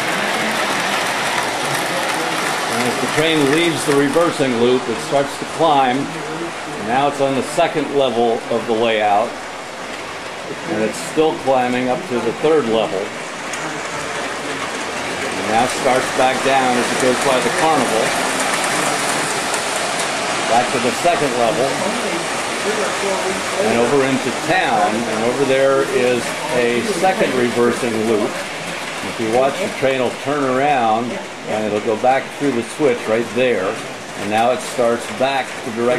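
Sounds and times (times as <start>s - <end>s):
model train rolling on track: 0.0s - 35.9s.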